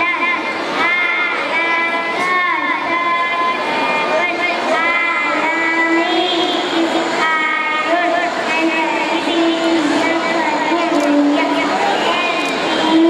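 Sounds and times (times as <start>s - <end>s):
child chanting through loudspeaker: 0.0s - 13.0s.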